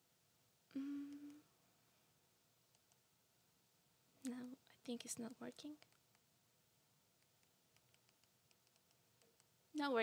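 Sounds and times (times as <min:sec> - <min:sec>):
woman speaking: 0:04.2 - 0:05.8, 0:09.8 - 0:10.0.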